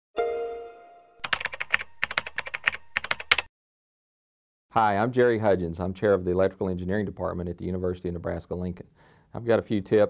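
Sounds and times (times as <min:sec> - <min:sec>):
musical note ringing: 0:00.2 - 0:02.1
keyboard typing clicks: 0:01.2 - 0:03.5.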